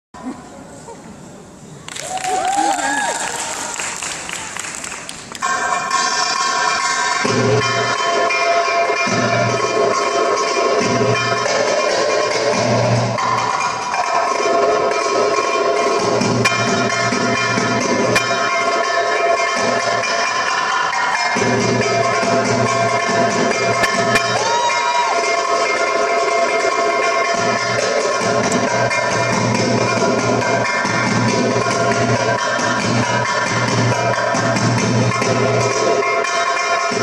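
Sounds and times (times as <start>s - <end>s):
belly dance music sustained notes: 1.7s - 37.0s
darbuka drum strokes: 21.4s - 24.4s.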